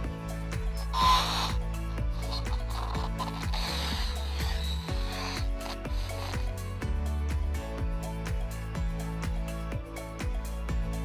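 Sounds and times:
music with clicking beat and bass: 0.0s - 11.0s.

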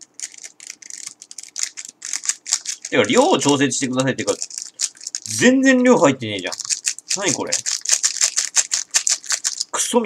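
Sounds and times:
plastic sachet crinkling: 0.0s - 9.8s.

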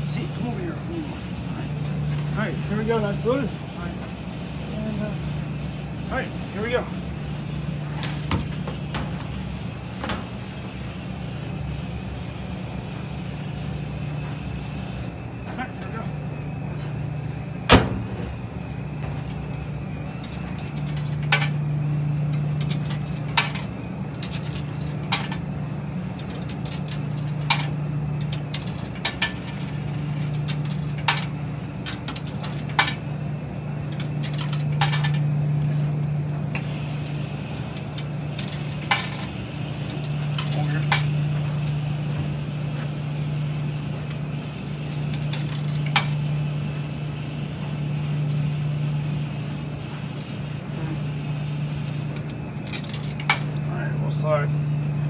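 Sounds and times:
washing machine humming: 0.0s - 55.0s.

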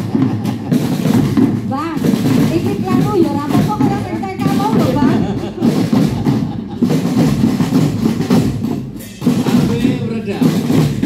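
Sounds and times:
marching drum band playing: 0.0s - 11.0s.

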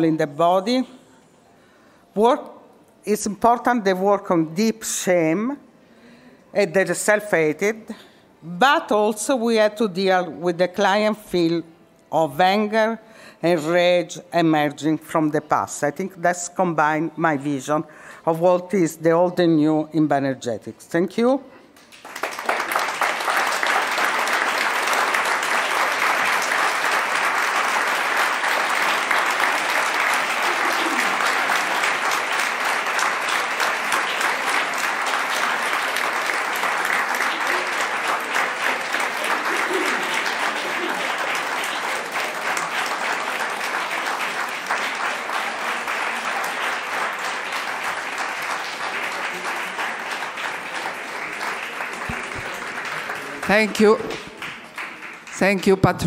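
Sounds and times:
audience applauding: 21.8s - 56.0s.

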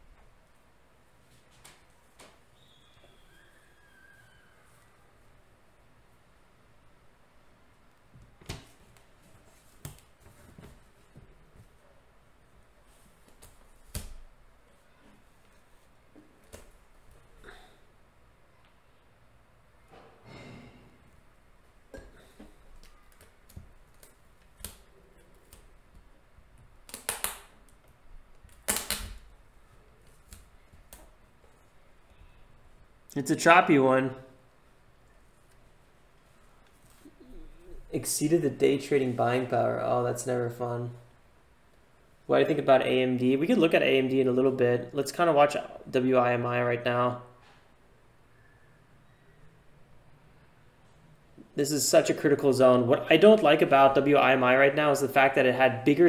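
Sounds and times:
faint thin whistling tones: 2.5s - 5.2s, 48.2s - 49.8s.

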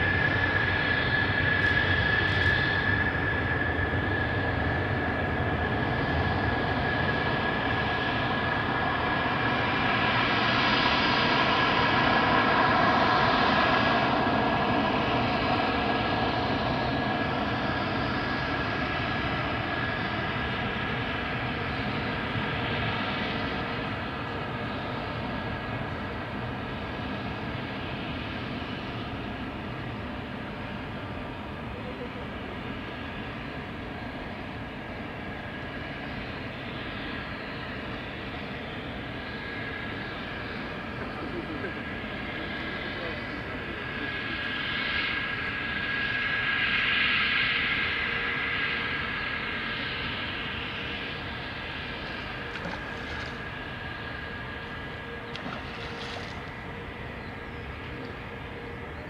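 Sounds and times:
distant jet engine whine: 0.0s - 59.0s.

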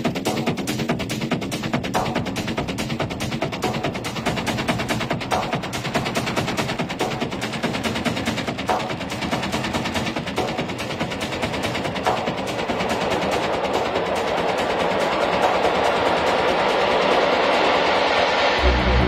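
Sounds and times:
rattling percussion loop: 0.0s - 19.0s
noise riser: 13.6s - 19.0s.

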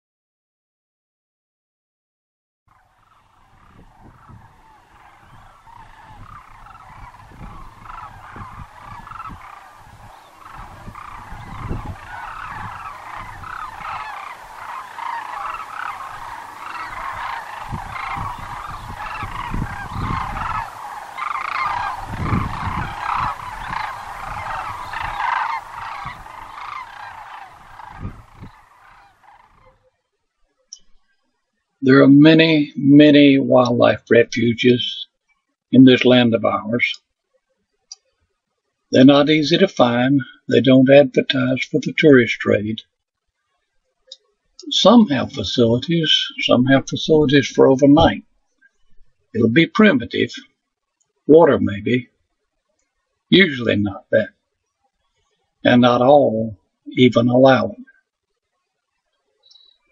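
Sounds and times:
sandhill cranes calling: 2.7s - 29.9s.

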